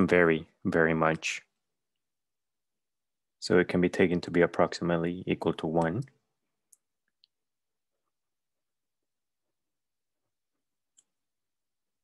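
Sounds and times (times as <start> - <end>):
person speaking: 3.4 - 6.2.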